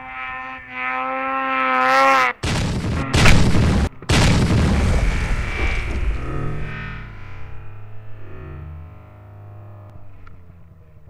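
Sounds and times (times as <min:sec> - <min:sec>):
rushing rumble of snow: 0:02.4 - 0:09.4
impact noise on microphone: 0:02.5 - 0:09.0.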